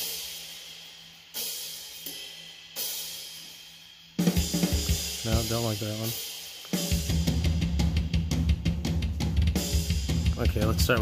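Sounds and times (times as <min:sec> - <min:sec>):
crash cymbal with kick drum: 0:00.0 - 0:11.0.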